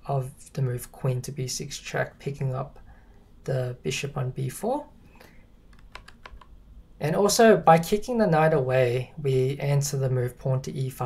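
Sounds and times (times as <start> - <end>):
computer key clicks: 5.7 - 6.5.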